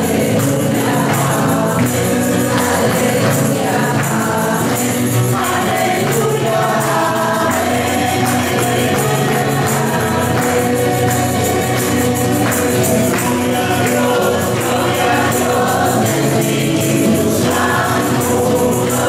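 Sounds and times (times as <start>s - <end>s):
group singing worship song: 0.0s - 19.0s.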